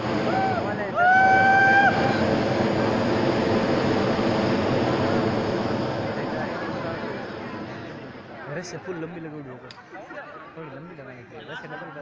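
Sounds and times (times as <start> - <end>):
propane burner roaring: 0.0 - 9.8
high held shout: 0.1 - 2.3.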